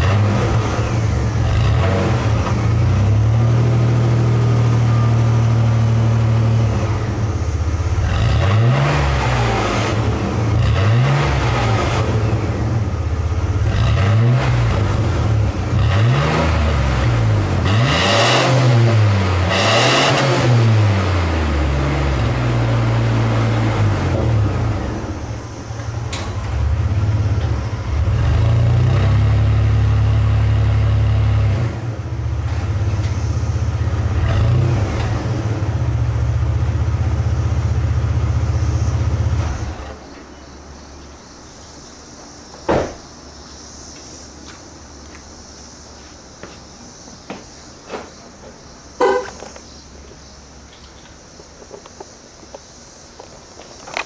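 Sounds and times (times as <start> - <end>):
pickup engine revving and idling: 0.0 - 26.0, 26.6 - 39.8.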